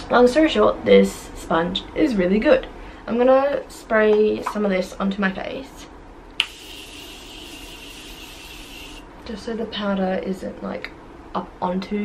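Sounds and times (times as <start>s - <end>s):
spray hissing: 6.4s - 9.0s.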